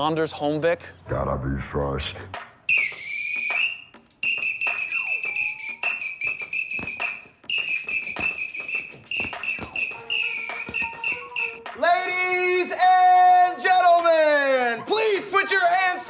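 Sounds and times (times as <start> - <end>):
music: 1.1 - 16.0
whistle blasts: 2.7 - 11.7.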